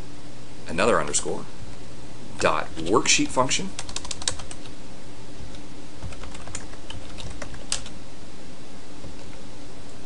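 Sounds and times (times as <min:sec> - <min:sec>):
computer keyboard typing: 0:03.8 - 0:04.7, 0:06.0 - 0:08.0.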